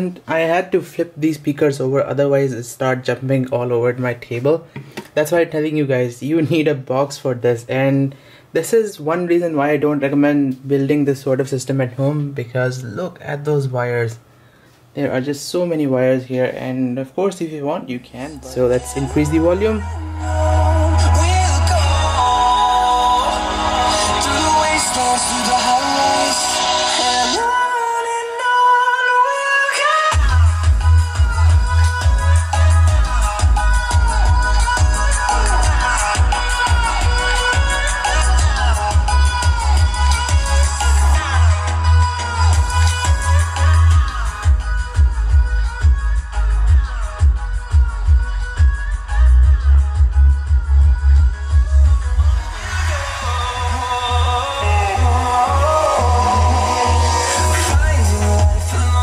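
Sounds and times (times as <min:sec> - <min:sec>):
electronic pop music with singing: 0:18.1 - 0:59.0
pounding bass: 0:18.4 - 0:27.4, 0:30.1 - 0:59.0.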